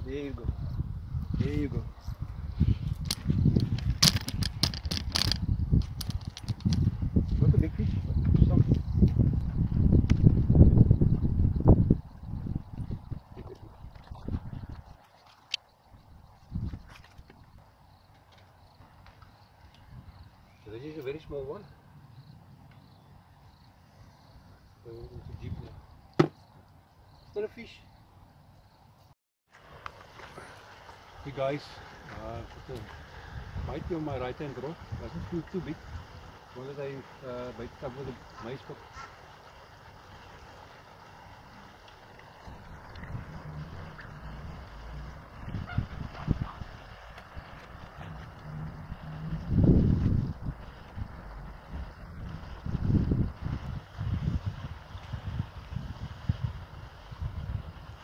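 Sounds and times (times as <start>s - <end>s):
wind buffeting microphone: 0.0s - 15.0s, 16.0s - 17.5s, 32.8s - 36.3s, 42.3s - 58.0s
sharp clicks and rustles: 3.0s - 6.9s
sharp knock: 26.2s - 26.4s.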